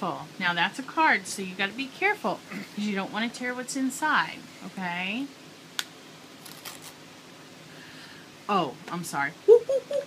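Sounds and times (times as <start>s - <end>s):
paper envelope crinkling: 6.4s - 7.0s.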